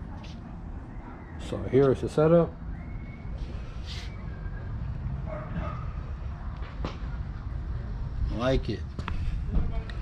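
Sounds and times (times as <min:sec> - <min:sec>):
dog barking: 0:05.2 - 0:06.0.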